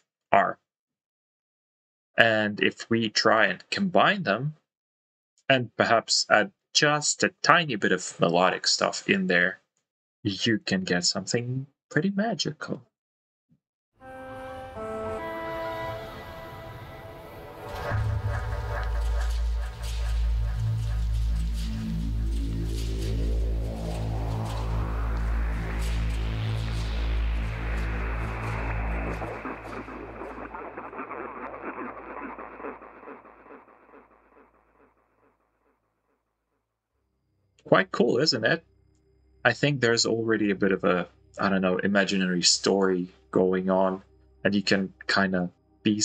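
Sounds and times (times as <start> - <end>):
loud low drone: 14.0 - 34.3
pitched tones: 14.0 - 34.5
noisy texture with reverb tail: 14.0 - 35.4
rising noise sweep: 14.1 - 35.4.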